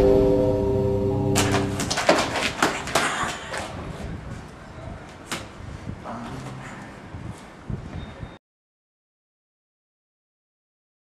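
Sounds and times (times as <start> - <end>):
held music chord: 0.0 - 1.9.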